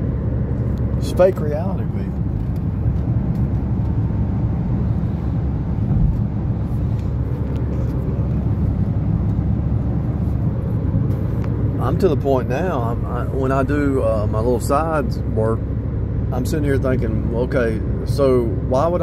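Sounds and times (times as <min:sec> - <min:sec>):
car cabin road noise: 0:00.0 - 0:19.0.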